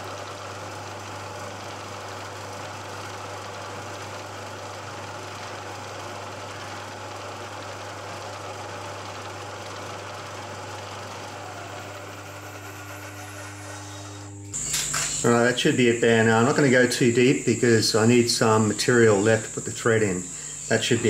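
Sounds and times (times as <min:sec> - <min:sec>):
milling machine cutting: 0:05.1 - 0:21.0.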